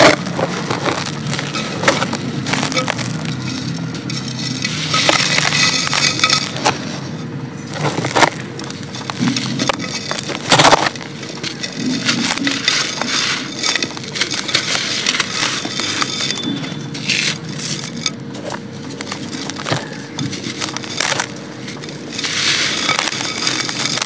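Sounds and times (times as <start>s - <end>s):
gritty sand crunching: 0.0s - 24.0s
sand pouring into clay pot: 0.0s - 24.0s.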